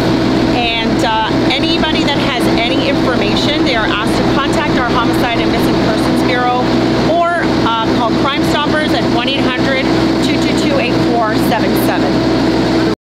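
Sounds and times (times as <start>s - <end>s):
mechanical hum: 0.0s - 13.0s
woman speaking: 0.5s - 12.2s.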